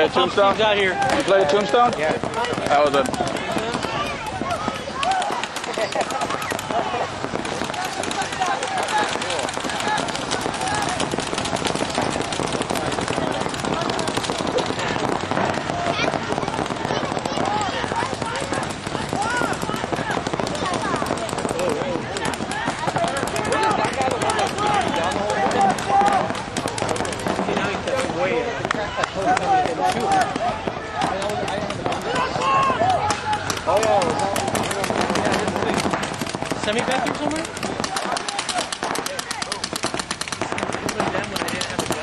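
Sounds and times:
voices shouting: 0.0 - 42.0
paintball markers popping: 1.0 - 15.3, 18.0 - 28.1, 29.3 - 42.0.

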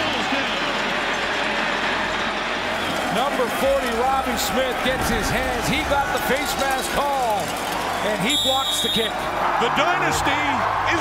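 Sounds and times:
stadium crowd cheering and shouting: 0.0 - 11.0.

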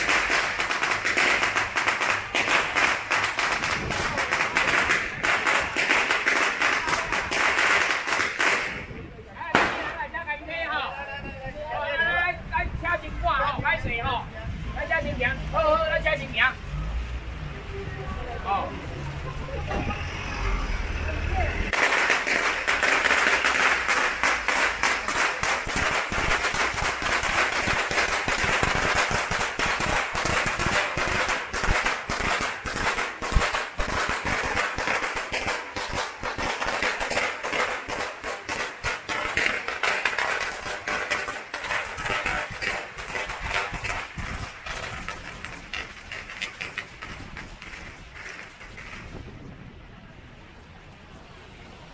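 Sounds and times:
firecrackers popping: 0.0 - 10.3, 21.6 - 49.5
crowd voices: 3.5 - 26.5.

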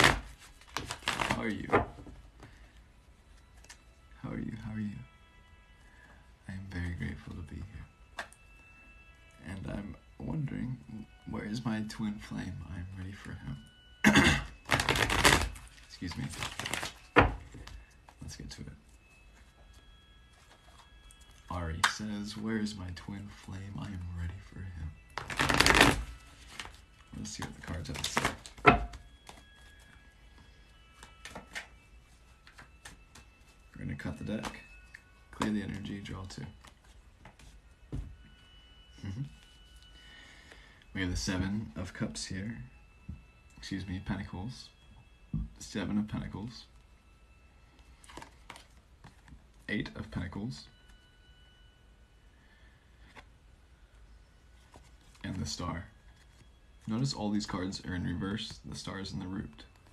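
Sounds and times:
soft clicks of cards handled: 31.0 - 31.7, 32.4 - 33.5, 36.6 - 37.6, 47.8 - 49.4.

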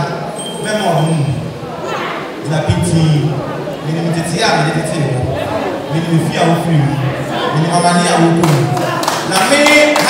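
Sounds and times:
man speaking through microphone: 0.0 - 1.6, 2.4 - 10.0.

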